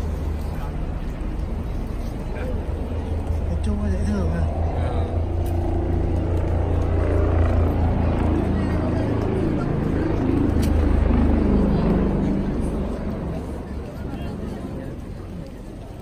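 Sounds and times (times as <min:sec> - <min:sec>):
people chattering: 0:00.0 - 0:16.0
road traffic rumble: 0:00.0 - 0:16.0.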